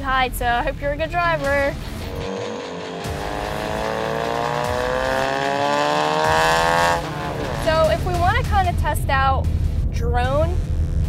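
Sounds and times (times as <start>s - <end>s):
car exhaust accelerating hard: 0.8s - 9.8s.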